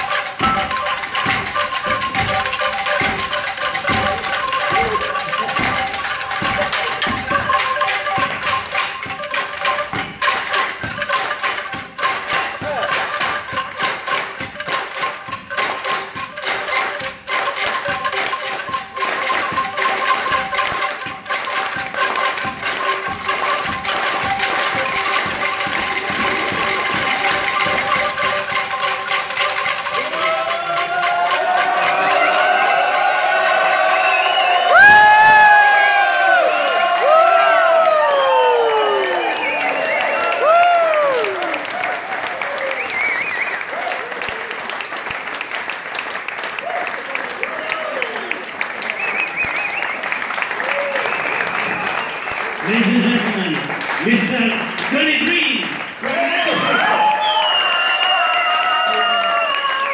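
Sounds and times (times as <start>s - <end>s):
bamboo angklung rattling chord: 0.0s - 33.8s
audience applauding: 0.0s - 59.9s
voices whooping and cheering: 30.0s - 44.7s, 46.6s - 49.9s, 50.5s - 52.4s, 56.0s - 59.9s.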